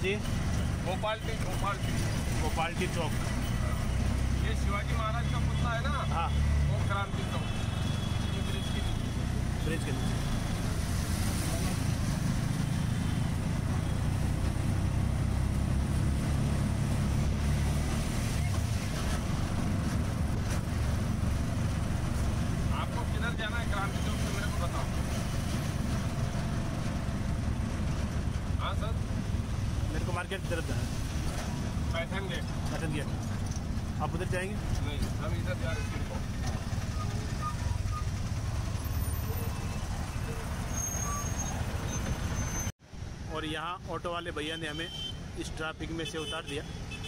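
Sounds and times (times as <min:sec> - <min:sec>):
road noise: 0:00.0 - 0:47.0.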